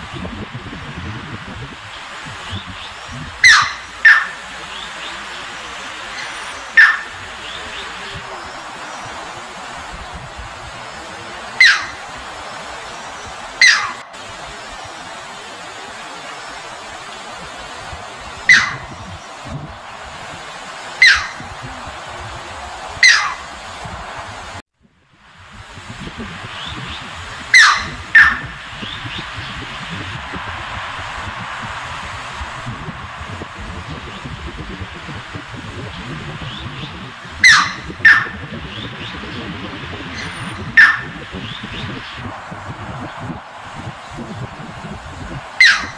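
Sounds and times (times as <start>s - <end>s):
stream water running over rocks: 1.8s - 24.6s
sharp downward-sliding bird call: 2.5s - 9.9s, 10.8s - 19.4s, 20.3s - 21.8s, 23.0s - 23.7s, 26.5s - 29.6s, 37.4s - 38.4s, 45.6s - 45.9s.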